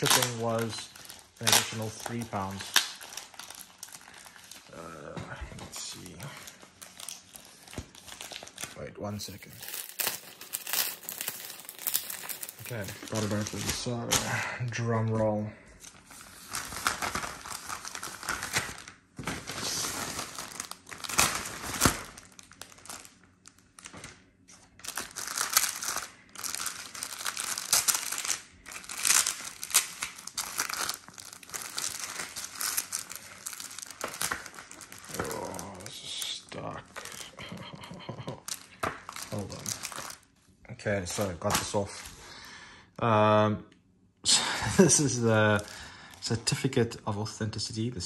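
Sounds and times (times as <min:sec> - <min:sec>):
plastic bag crinkling: 0:00.0 - 0:40.3, 0:44.8 - 0:46.6.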